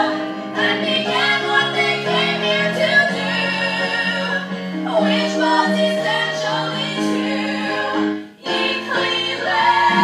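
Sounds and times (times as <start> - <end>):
women singing: 0.0 - 10.0.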